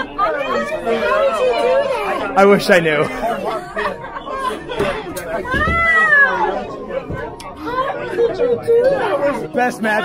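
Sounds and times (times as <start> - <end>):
excited chatter of voices: 0.0 - 10.0.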